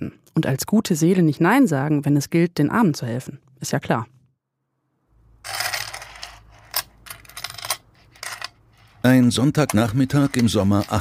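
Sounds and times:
coins clinking set down: 5.4s - 9.0s
coins jingling: 5.4s - 9.0s.

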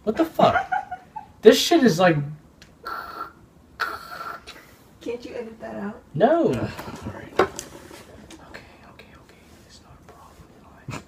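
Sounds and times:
faint whispering: 8.2s - 11.0s.

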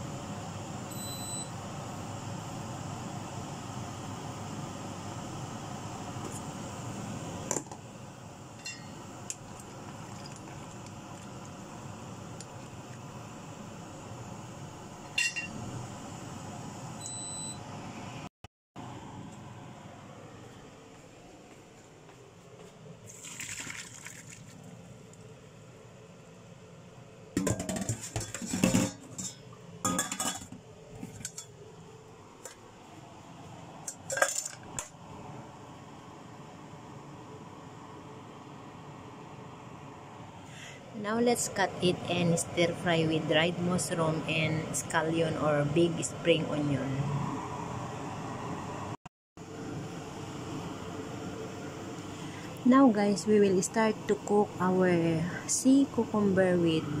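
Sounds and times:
water sloshing in a pot: 8.6s - 11.5s, 23.0s - 25.1s
pots and utensils clattering: 27.4s - 31.6s, 33.9s - 34.8s.

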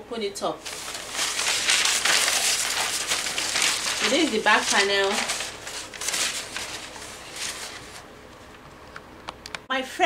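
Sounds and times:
paper rustling: 0.6s - 8.1s.

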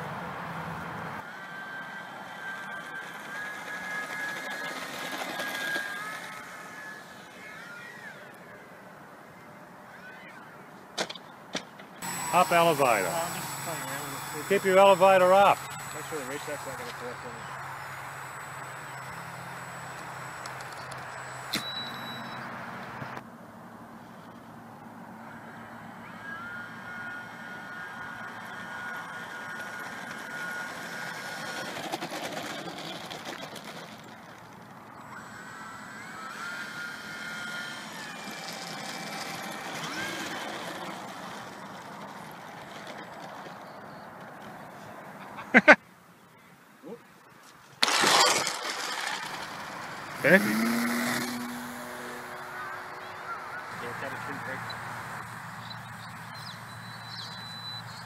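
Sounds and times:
model airplane motors whining: 0.8s - 8.7s, 12.0s - 23.3s, 24.0s - 44.9s, 47.8s - 58.0s
loud burst of noise: 12.0s - 21.7s, 47.8s - 56.3s
crash impact: 47.8s - 49.6s.

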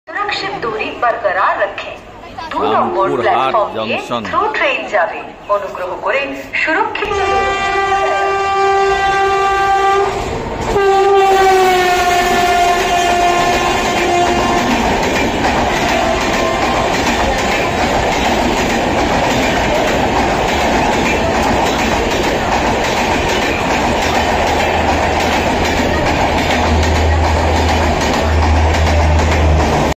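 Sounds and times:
train coaches rumbling past: 0.1s - 30.0s
train horn blasts: 7.0s - 15.0s, 15.8s - 17.0s.

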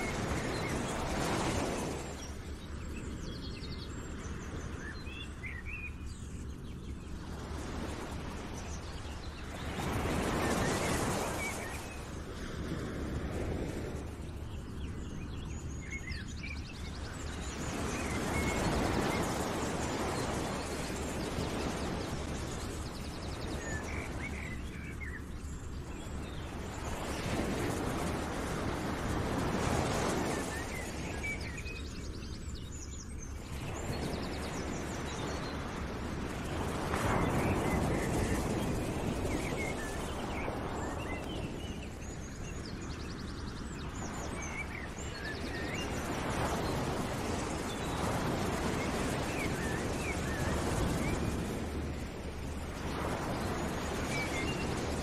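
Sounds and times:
small birds chirping: 0.0s - 12.2s, 14.0s - 55.0s.

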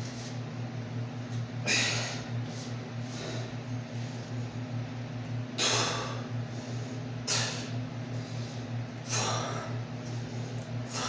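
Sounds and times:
steady low hum: 0.0s - 11.0s
man exhaling forcefully: 1.6s - 2.3s, 5.6s - 6.3s, 7.2s - 7.8s, 9.0s - 9.8s.

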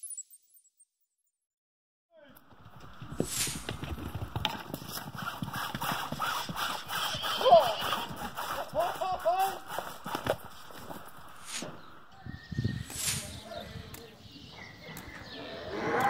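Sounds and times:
horse calls: 2.2s - 12.1s, 14.8s - 16.0s
horse hoof thuds: 2.4s - 8.9s, 9.6s - 12.0s.

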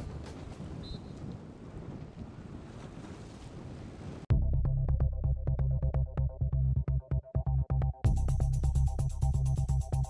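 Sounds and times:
wind noise on microphone: 0.0s - 4.3s.

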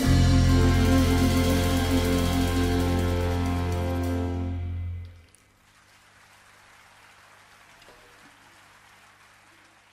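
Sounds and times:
orchestra final chord: 0.0s - 5.1s
audience applause: 5.4s - 9.9s.

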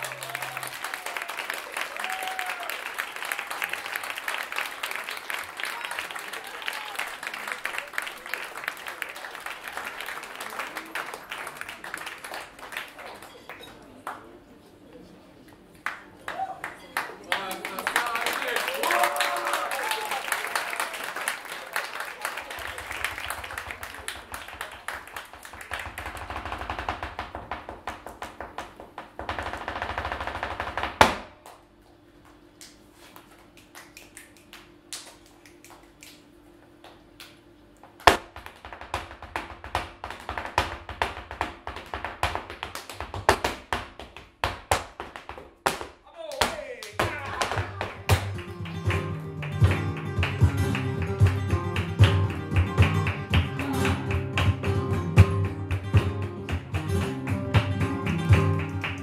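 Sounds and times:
dance shoes striking wooden stage: 22.8s - 31.4s, 38.0s - 59.0s
acoustic guitar: 47.1s - 59.0s.

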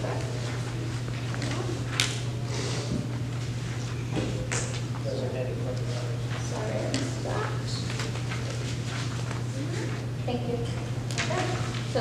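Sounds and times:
paper handling: 5.7s - 10.1s.

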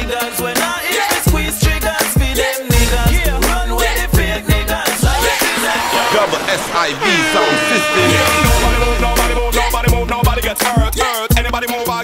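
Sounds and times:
dancehall music mix: 0.0s - 12.0s
blaring air horn effect: 5.2s - 10.3s.

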